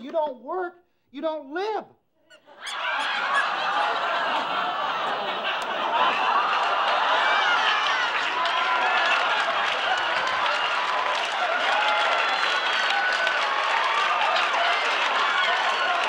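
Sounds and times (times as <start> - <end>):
voices calling out: 2.3 - 12.7
people laughing: 2.3 - 13.3
audience applauding: 2.6 - 16.0.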